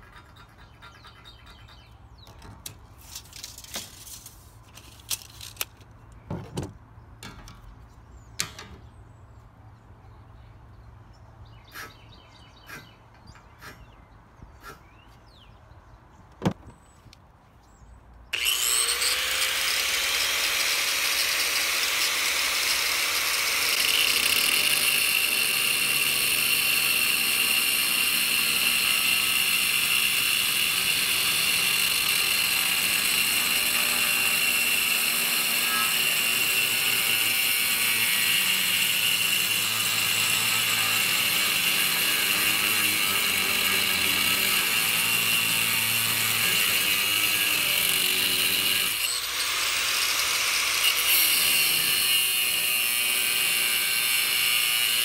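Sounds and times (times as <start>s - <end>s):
angle grinder cutting steel: 18.4s - 55.0s.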